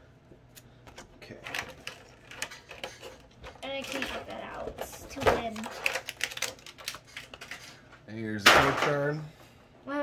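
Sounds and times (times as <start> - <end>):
card packaging crackling: 5.2 - 7.7.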